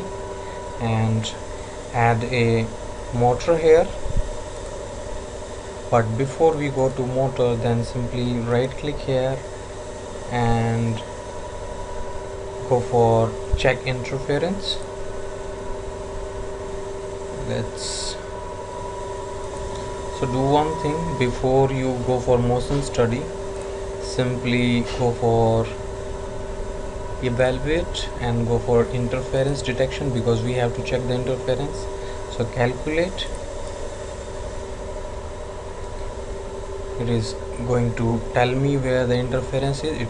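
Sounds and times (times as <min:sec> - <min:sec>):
background hum and hiss: 0:00.0 - 0:40.0
steady tones: 0:00.0 - 0:40.0.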